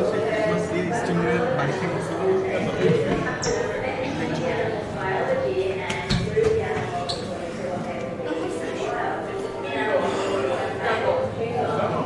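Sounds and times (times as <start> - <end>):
crowd chatter indoors: 0.0 - 12.0.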